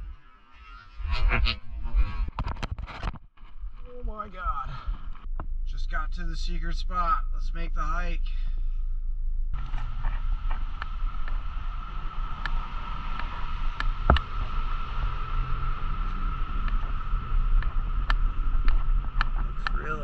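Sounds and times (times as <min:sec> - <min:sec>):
constant high hum: 0:00.0 - 0:20.0
low rumble: 0:00.0 - 0:20.0.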